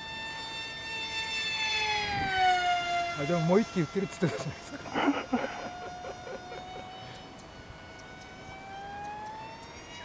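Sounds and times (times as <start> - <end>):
model plane motor whine: 0.0 - 10.0.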